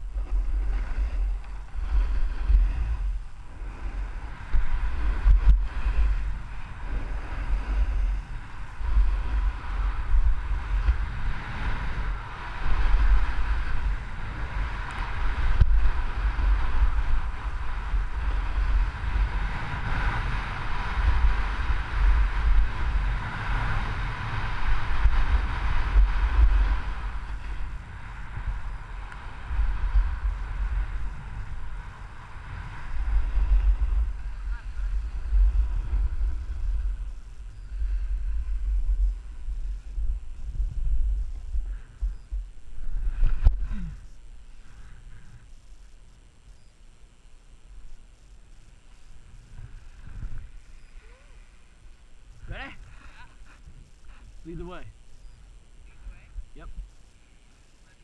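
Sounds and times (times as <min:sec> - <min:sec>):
wind buffeting microphone: 0:00.0 - 0:45.7, 0:48.7 - 0:51.0
skis scraping over packed snow: 0:00.0 - 0:46.1.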